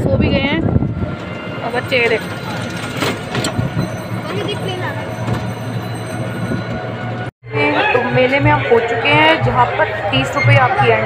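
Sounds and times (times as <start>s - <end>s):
road noise rushing: 0.0s - 7.3s.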